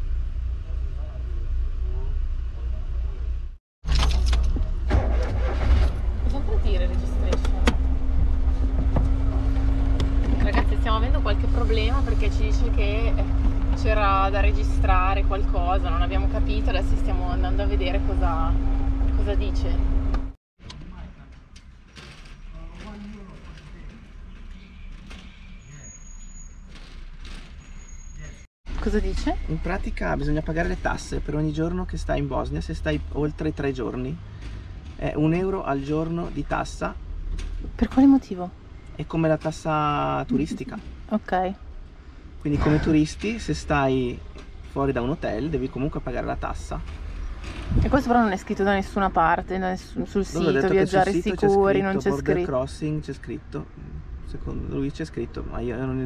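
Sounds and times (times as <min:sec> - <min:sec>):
van engine rumble: 0:00.0 - 0:56.0
vehicle engine idling: 0:04.5 - 0:20.3.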